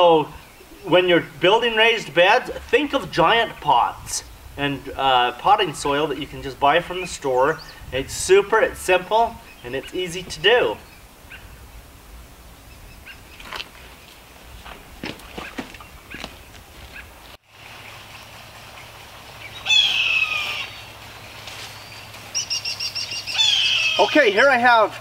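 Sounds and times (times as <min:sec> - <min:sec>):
songbirds chirping: 0:00.0 - 0:25.0.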